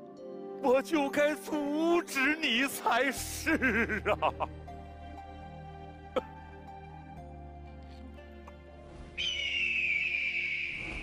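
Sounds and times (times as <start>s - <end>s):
soft background music: 0.0s - 11.0s
high whistle-like tone sliding down: 9.2s - 11.0s.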